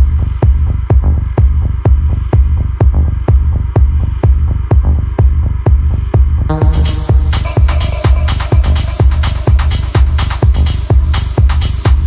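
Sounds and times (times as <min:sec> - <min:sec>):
deep bass line: 0:00.0 - 0:12.0
techno kick drum: 0:00.0 - 0:12.0.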